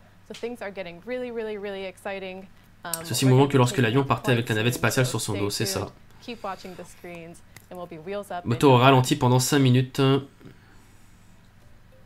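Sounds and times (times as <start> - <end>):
woman talking: 0.3 - 8.8.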